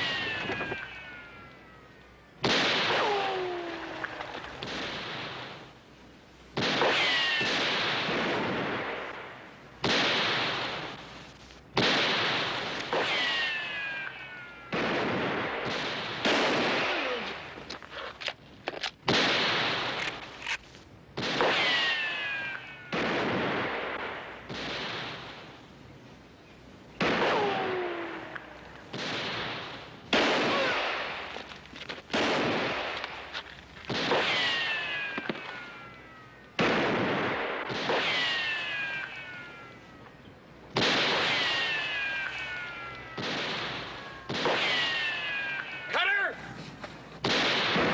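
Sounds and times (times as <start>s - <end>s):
echoing gunshots: 0.0s - 1.5s, 2.4s - 5.8s, 6.5s - 17.8s, 19.0s - 20.6s, 21.2s - 25.7s, 26.9s - 33.3s, 33.9s - 40.0s, 40.7s - 46.4s, 47.2s - 47.9s
ricochet whine: 0.0s - 5.8s, 6.5s - 25.6s, 26.9s - 46.0s.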